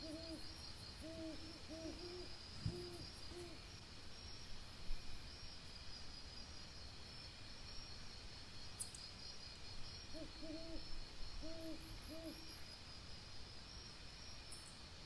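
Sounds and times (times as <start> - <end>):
night bird hooting: 0.0 - 3.7, 10.1 - 12.6.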